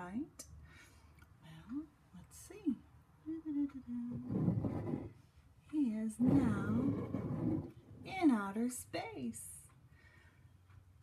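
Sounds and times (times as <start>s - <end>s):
ceramic mug scraping on countertop: 4.1s - 5.2s, 6.2s - 7.8s.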